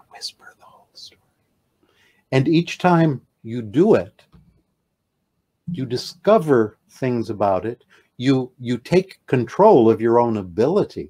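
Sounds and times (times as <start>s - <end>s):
man whispering: 0.0s - 1.2s, 5.7s - 6.6s.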